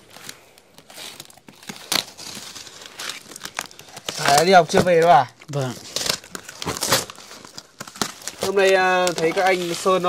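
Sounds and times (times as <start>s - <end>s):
cardboard crackling rustles: 0.0s - 10.0s
cardboard ripping: 0.0s - 10.0s.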